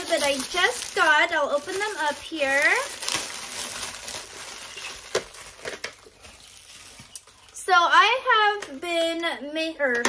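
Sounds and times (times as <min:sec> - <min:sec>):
plastic bag crinkling: 0:00.0 - 0:07.8.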